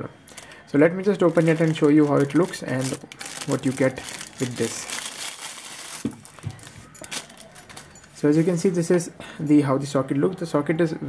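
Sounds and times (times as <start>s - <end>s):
plastic bag crinkling: 0.3s - 8.8s.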